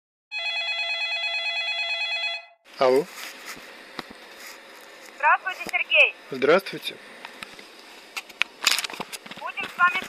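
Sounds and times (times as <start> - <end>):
electronic telephone ringing: 0.3 - 2.6.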